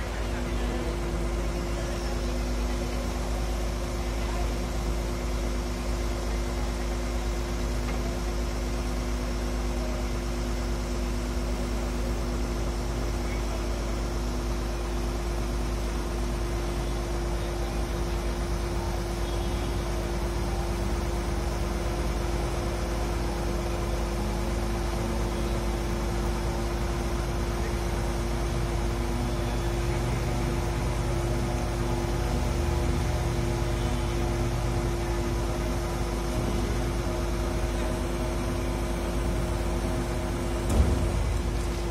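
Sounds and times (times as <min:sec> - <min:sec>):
diesel engine humming: 0:00.0 - 0:41.9.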